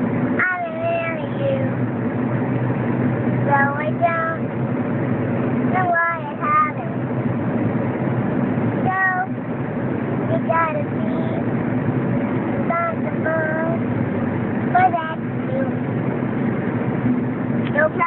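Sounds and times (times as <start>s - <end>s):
car road and engine drone: 0.0s - 18.0s.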